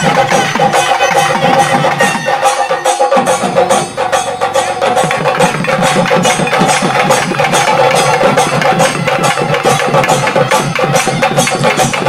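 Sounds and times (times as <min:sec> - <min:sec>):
barrel drums beating: 0:00.0 - 0:12.0.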